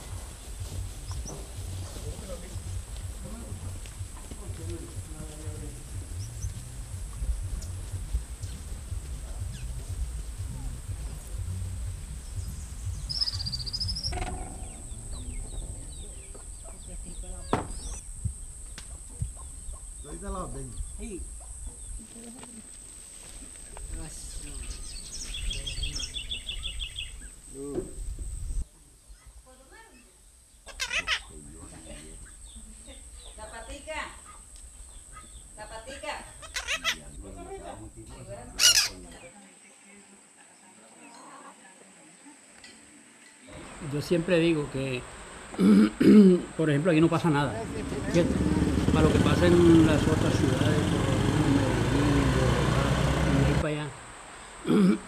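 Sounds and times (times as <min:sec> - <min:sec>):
birds chirping: 0:00.0 - 0:42.7, 0:43.4 - 0:55.0
harsh bird squawk: 0:13.1 - 0:15.5, 0:30.6 - 0:31.4, 0:36.3 - 0:37.1, 0:38.6 - 0:39.0
low voices: 0:43.4 - 0:55.0.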